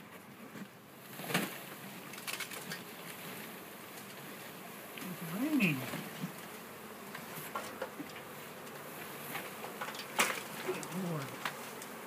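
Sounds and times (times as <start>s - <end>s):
bees buzzing: 0.8s - 12.0s.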